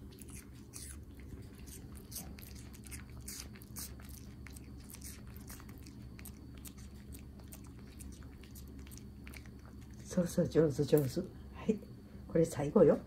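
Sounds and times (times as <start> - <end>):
puppy crunching a treat: 0.0 - 10.2.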